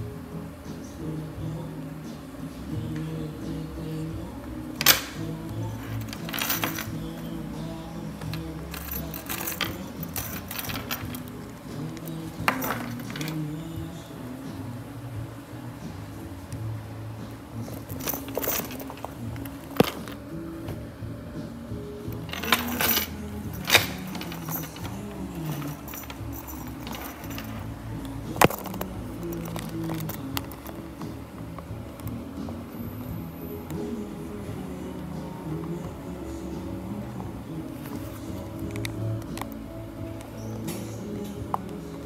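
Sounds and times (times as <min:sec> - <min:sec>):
background music: 0:00.0 - 0:42.0
metal chain clinking: 0:04.8 - 0:07.3, 0:08.2 - 0:13.6, 0:17.7 - 0:20.2, 0:22.2 - 0:27.7
metal bag hardware clicking: 0:17.7 - 0:20.2, 0:22.2 - 0:27.7.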